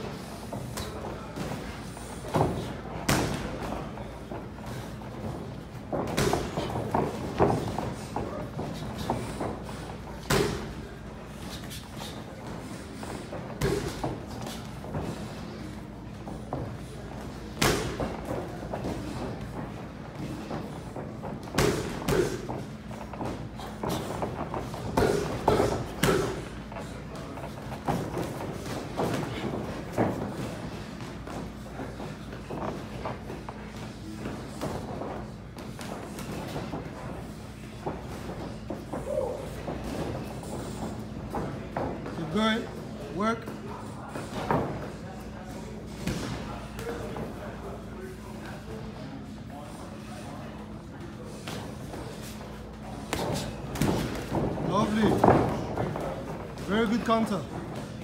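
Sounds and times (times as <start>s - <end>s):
steady low hum: 0.0s - 58.0s
boxing gloves punching thuds: 0.7s - 3.8s, 4.6s - 10.8s, 13.4s - 15.2s, 17.5s - 19.3s, 20.2s - 26.6s.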